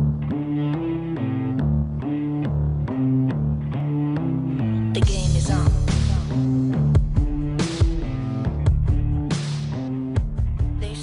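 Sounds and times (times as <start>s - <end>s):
held bass notes: 0.0s - 11.0s.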